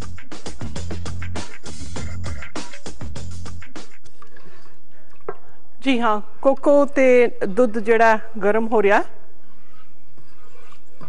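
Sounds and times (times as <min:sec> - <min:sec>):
woman speaking: 0:05.8 - 0:09.2
spatula stirring liquid in saucepan: 0:09.4 - 0:11.0.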